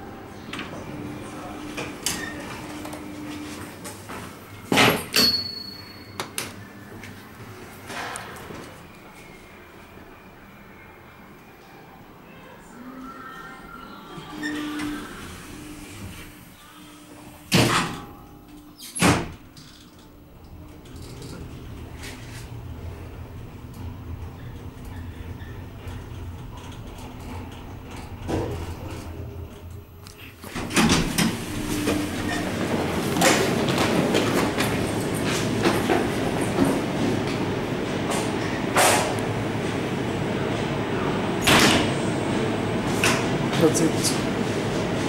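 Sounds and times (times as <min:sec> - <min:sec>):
elevator doors closing with thump: 0:17.2 - 0:45.0.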